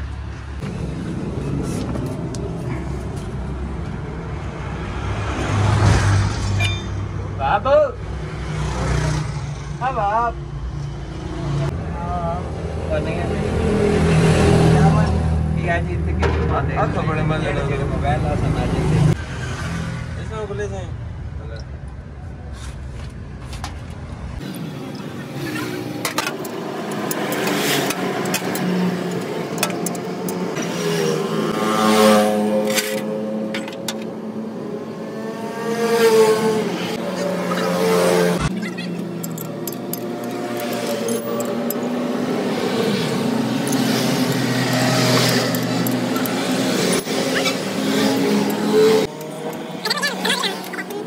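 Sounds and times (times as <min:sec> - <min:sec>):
vehicle engine revving: 0:35.0 - 0:51.0.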